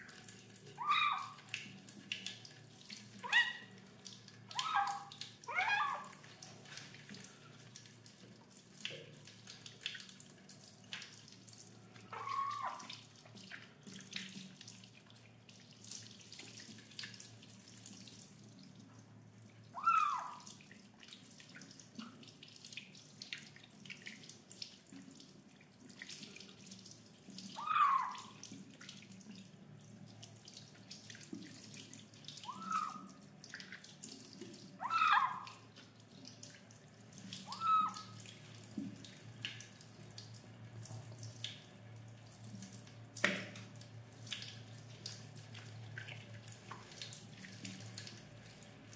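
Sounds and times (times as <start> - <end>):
kitten meowing: 19.8 - 20.4, 27.6 - 28.3, 34.8 - 35.5
water splashing: 31.2 - 35.7, 37.2 - 39.8.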